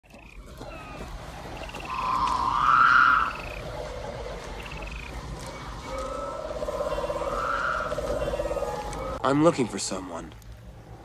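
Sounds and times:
high pulsed frog trills: 0:00.1 - 0:09.3
long low frog call: 0:00.1 - 0:09.3.

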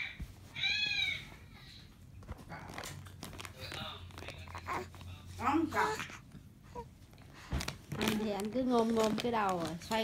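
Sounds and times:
faint baby sounds: 0:04.4 - 0:07.0.

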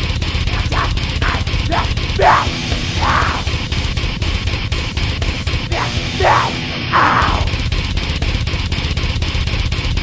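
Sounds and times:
distorted heavy metal guitars: 0:00.0 - 0:10.0.

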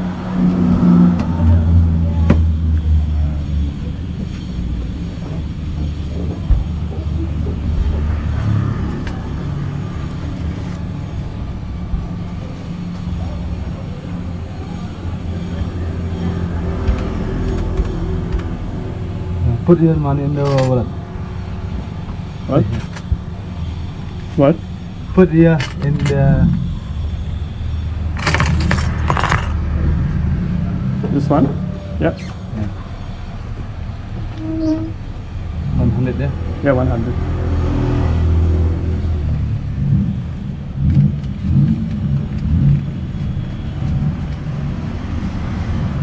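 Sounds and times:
vehicle engine droning: 0:00.0 - 0:46.0
keys jangling: 0:28.2 - 0:29.5.

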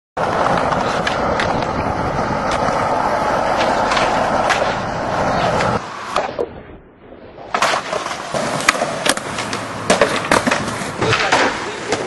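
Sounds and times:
skateboard wheels rolling on concrete: 0:00.2 - 0:12.0.

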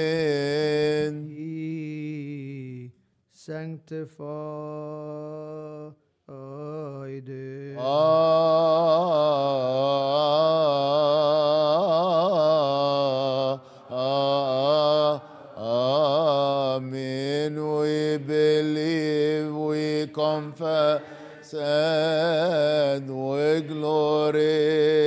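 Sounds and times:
man chanting: 0:00.0 - 0:25.0.

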